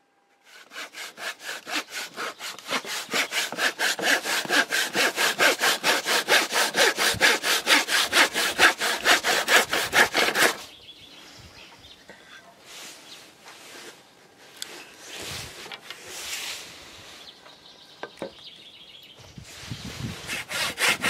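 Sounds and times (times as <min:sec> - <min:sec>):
hand saw cutting wood: 0:00.5 - 0:10.7, 0:20.2 - 0:21.0.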